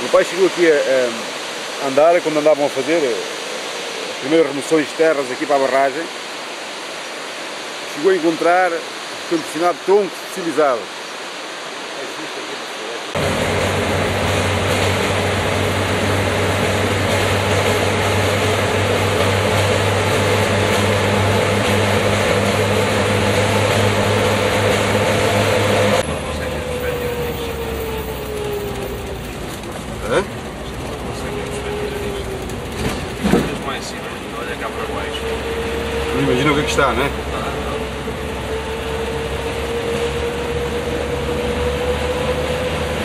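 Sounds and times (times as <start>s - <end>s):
car engine and road drone: 0.0s - 43.0s
low hum: 13.2s - 43.0s.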